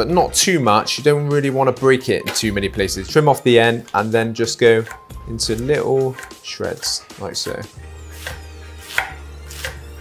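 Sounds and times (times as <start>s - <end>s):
knife slicing lettuce on board: 8.1s - 9.8s.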